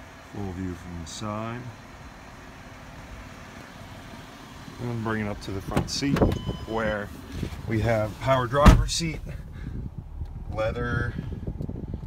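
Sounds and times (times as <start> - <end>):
low rumble with faint hiss: 0.0 - 12.0.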